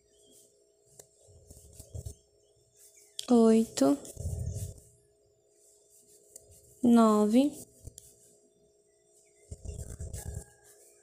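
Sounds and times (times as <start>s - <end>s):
faint hum: 0.0s - 11.0s.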